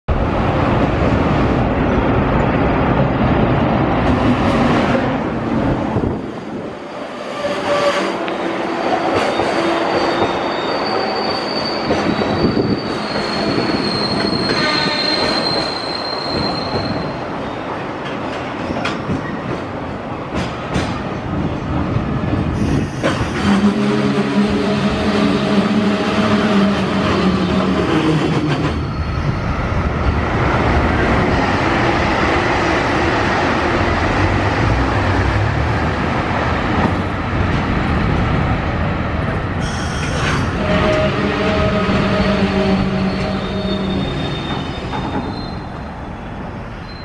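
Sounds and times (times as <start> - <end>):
high wheel squeal: 7.1 - 17.7, 28.6 - 29.5, 39.6 - 46.2, 46.8 - 47.0.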